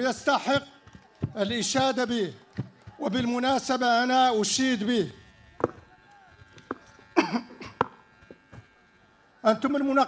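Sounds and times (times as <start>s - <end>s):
man coughing: 7.2s - 7.8s.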